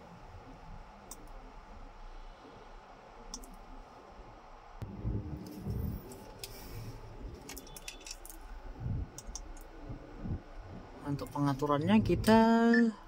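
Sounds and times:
dull low bumps: 4.8 - 7.4, 8.5 - 12.5.

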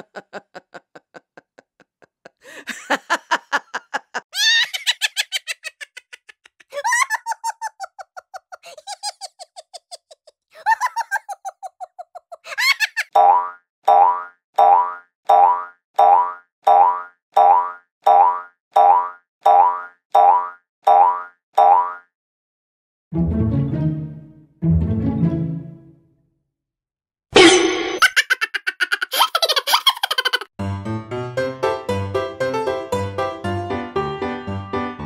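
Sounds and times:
cartoon spring boings: 27.4 - 28.0.

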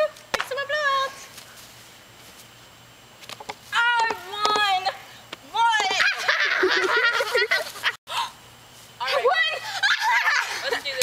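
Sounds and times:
girl squealing laughter and shrieks: 5.8 - 8.4, 9.2 - 10.9.

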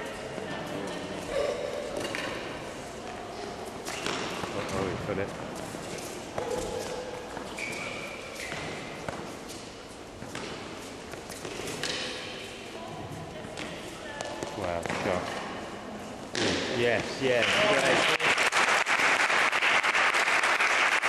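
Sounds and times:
rackets striking tennis ball: 1.6 - 12.6, 13.4 - 17.2
ball bouncing on court: 3.9 - 5.5, 6.3 - 9.6, 10.2 - 12.3, 13.4 - 15.5, 16.2 - 17.2.

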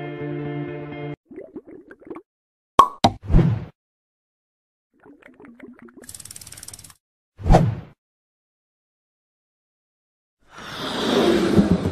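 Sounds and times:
fast ratchet-like ticks: 6.0 - 7.0
scattered clicks: 6.0 - 7.0.

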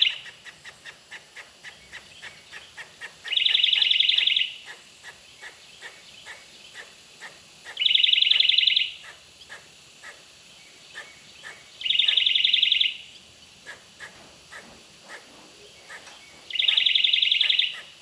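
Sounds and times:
loud fast trilling call: 0.0 - 10.2, 11.0 - 13.0, 15.9 - 18.0
quick regular chirps: 0.0 - 15.2, 15.8 - 18.0.

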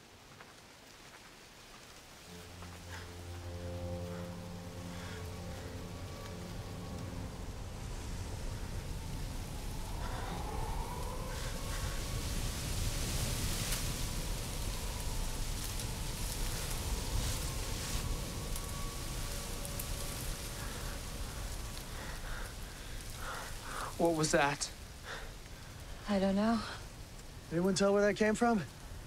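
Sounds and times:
distant siren wailing: 2.2 - 26.0
noisy rumble: 2.3 - 26.2.

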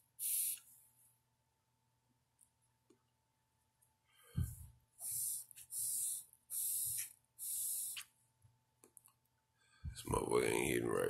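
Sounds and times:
short puffing hisses: 0.2 - 0.7, 4.4 - 8.1.

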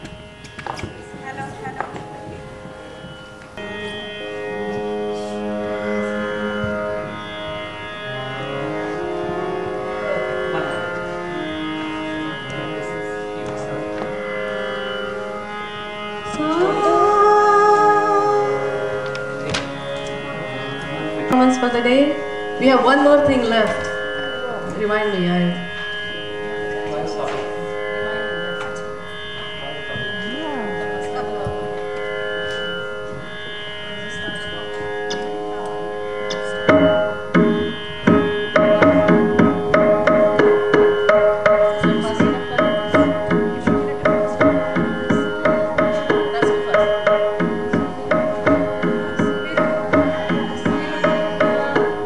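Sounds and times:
harmonium melody: 0.0 - 52.0
steady drone: 0.0 - 52.0.

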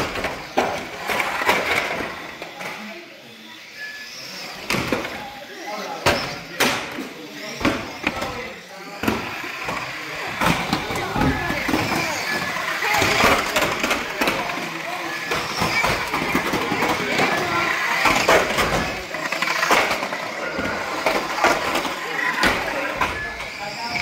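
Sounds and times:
radio-controlled cars racing: 0.0 - 24.0
spectators chattering and calling: 0.0 - 24.0.

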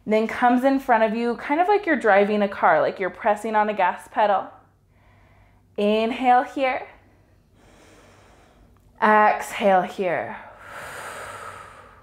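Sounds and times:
faint inhale through nose: 10.6 - 12.0.

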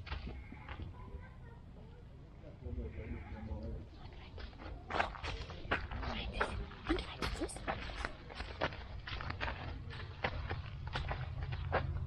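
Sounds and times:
low camera rumble: 0.0 - 12.0.

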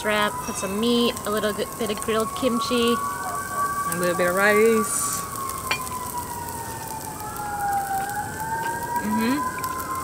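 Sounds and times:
higher siren wail: 0.0 - 10.0
siren wailing: 0.0 - 10.0.

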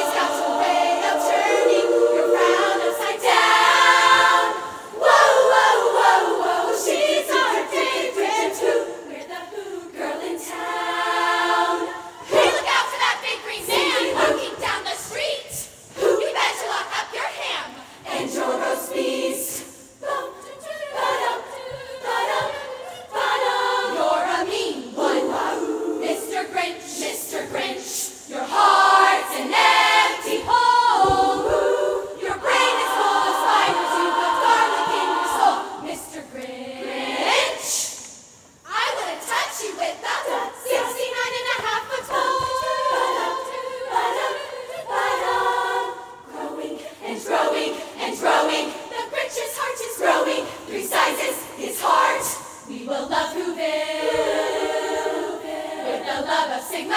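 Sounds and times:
women's choir singing: 0.0 - 56.9.

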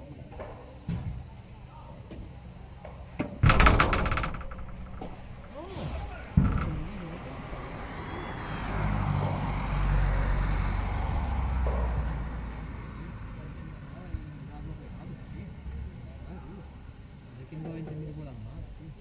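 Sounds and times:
rattling clicks: 3.4 - 7.6
low rumble: 3.4 - 9.7.

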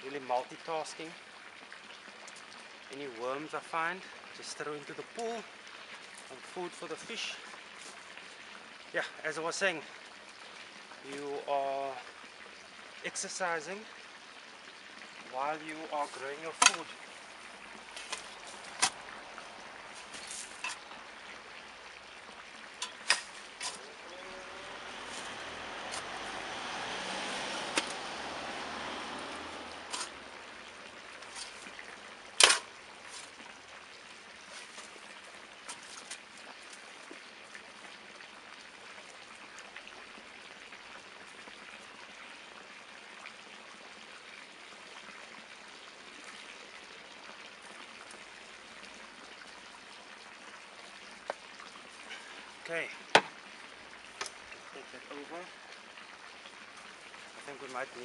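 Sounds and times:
faint rustling of soil: 0.0 - 39.7
soil sliding and pouring: 15.3 - 21.0, 22.8 - 33.6, 34.2 - 37.2
spade knocking metal wheelbarrow: 16.6 - 16.8.

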